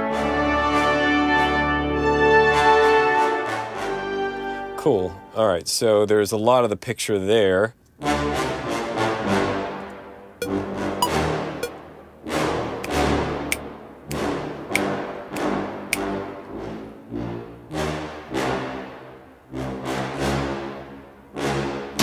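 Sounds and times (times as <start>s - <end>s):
brass chords: 0.0s - 4.8s, 8.0s - 22.0s.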